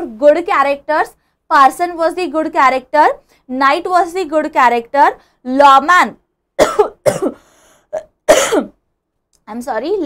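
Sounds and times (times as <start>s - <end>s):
woman coughing: 6.6s - 7.4s, 8.0s - 8.8s.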